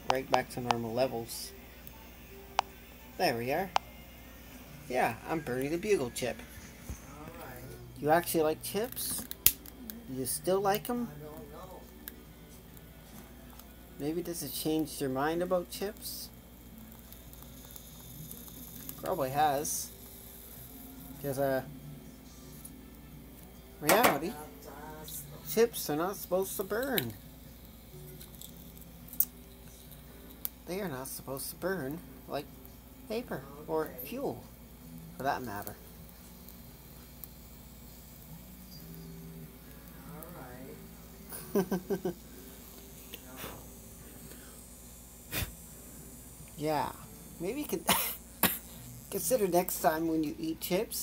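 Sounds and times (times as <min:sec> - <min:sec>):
corn chips burning crackling: 0:00.0 - 0:04.0, 0:04.6 - 0:51.0
steady low hum: 0:00.0 - 0:51.0.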